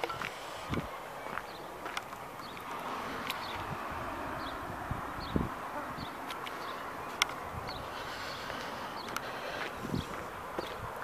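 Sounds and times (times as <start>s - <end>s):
footsteps: 0.0s - 3.7s, 8.4s - 10.9s.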